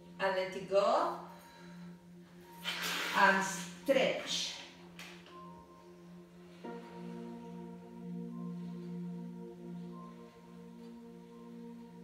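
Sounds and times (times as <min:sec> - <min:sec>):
ambient music low tone: 0:00.0 - 0:12.0.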